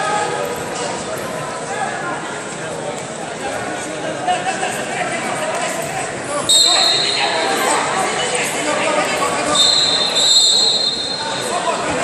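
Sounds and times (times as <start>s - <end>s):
indistinct echoing voices: 3.2s - 12.0s
high steady whistle: 6.5s - 7.3s, 9.5s - 11.5s.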